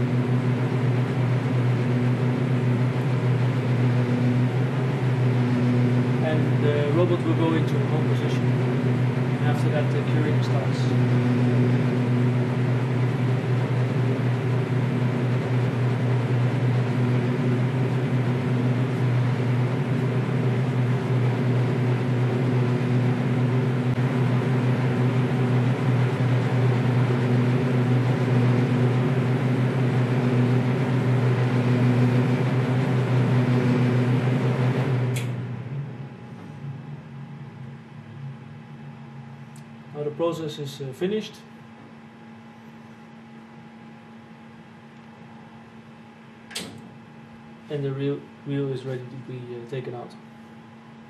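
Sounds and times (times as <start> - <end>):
extraction fan humming: 0.0 - 51.0
machine switching off click: 35.1 - 35.4, 46.5 - 47.0.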